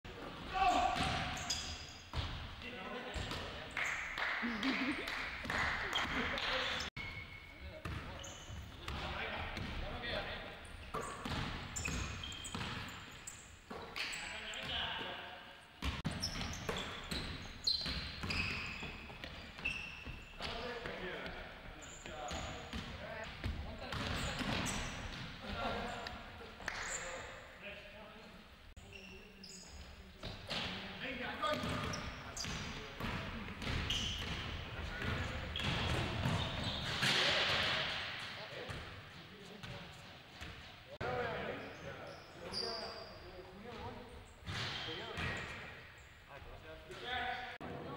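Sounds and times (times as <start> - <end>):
basketballs bouncing on wooden floor: 10.9 - 12.9, 31.5 - 37.2
players' indistinct voices: 20.4 - 47.9.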